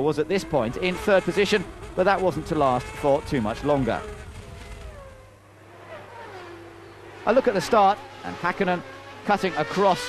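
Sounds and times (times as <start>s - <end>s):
racing car engines: 0.0s - 10.0s.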